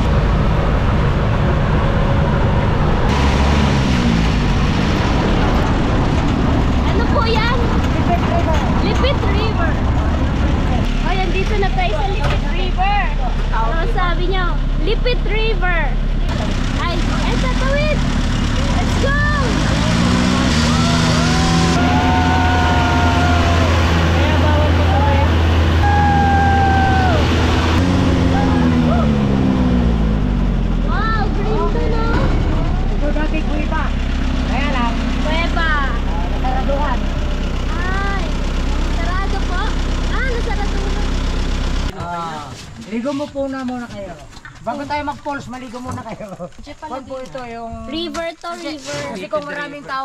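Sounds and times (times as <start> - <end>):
vehicle engine revving: 0.0 - 42.0
tires on gravel: 0.0 - 50.0.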